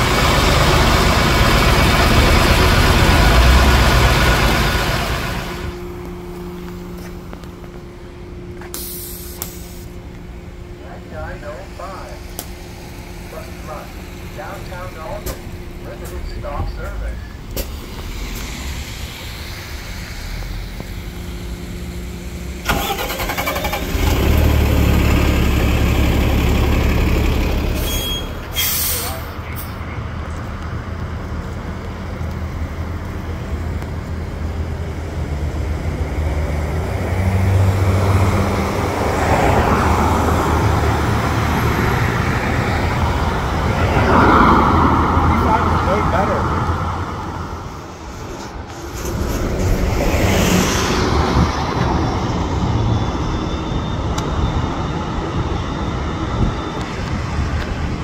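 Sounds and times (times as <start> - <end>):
bus engine running: 0.0 - 58.0
road traffic: 0.0 - 58.0.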